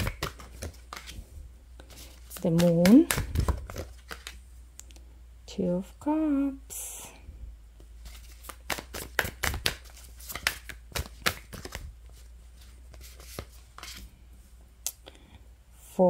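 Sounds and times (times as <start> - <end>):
cards being shuffled: 0.0 - 4.4, 7.9 - 14.1.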